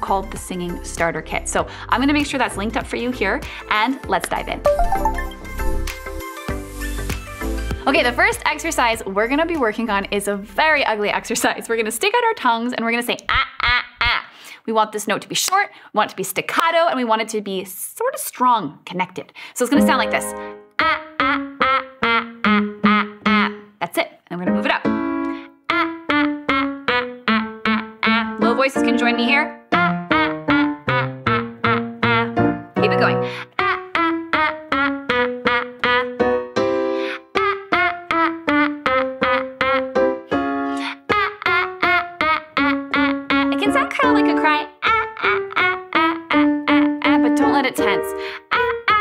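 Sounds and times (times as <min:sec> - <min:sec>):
woman singing staccato notes: 0:00.1 - 0:04.6, 0:19.7 - 0:36.2, 0:37.2 - 0:40.0, 0:40.8 - 0:49.0
instrumental accompaniment: 0:02.1 - 0:08.8, 0:19.8 - 0:23.8, 0:24.4 - 0:49.0.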